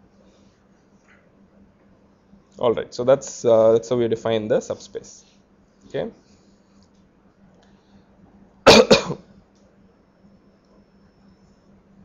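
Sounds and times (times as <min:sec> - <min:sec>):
person coughing: 0:08.7 - 0:09.3.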